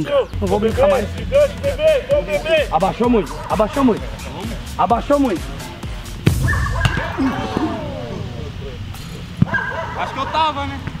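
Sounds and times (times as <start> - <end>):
football kicked with a thud: 6.2 - 7.3.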